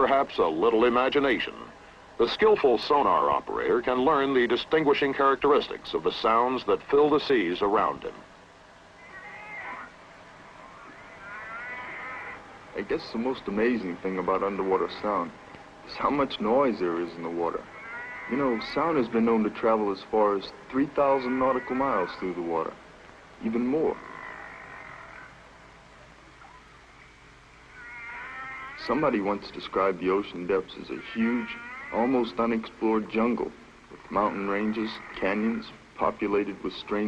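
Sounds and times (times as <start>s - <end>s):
faint underwater animal calls: 8.9s - 22.8s, 23.4s - 37.0s.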